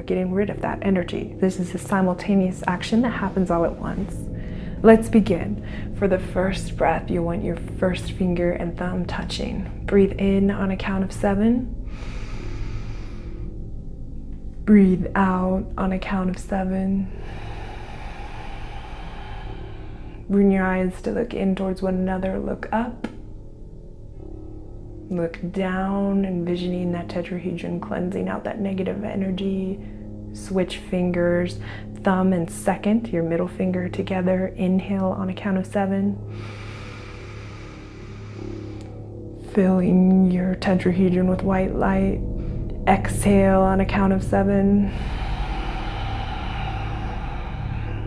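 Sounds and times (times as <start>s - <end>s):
low ambient drone: 0.0s - 48.0s
breathy inhale hiss: 4.2s - 4.8s, 5.6s - 6.0s, 11.8s - 13.8s, 17.0s - 20.3s, 31.6s - 32.0s, 36.2s - 39.4s, 44.8s - 48.0s.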